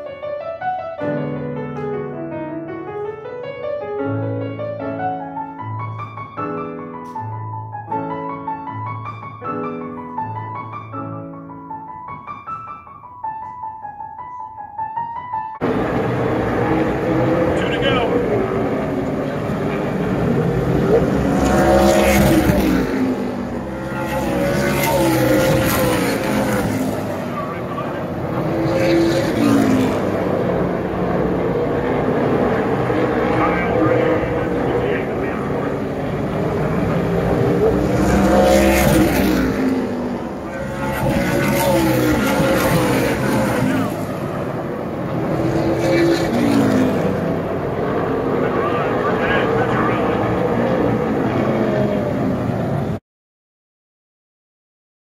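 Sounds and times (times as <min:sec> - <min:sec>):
stock car engines racing: 0:15.6 - 0:53.0.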